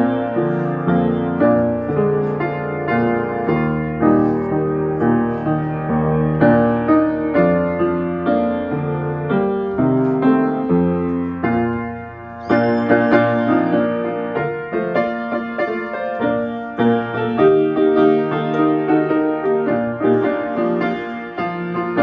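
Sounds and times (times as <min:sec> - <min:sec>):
slow gentle piano: 0:00.0 - 0:22.0.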